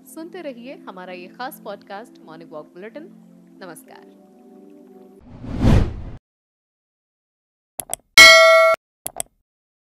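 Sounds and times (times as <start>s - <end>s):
notification bell ding: 8.2s - 8.8s.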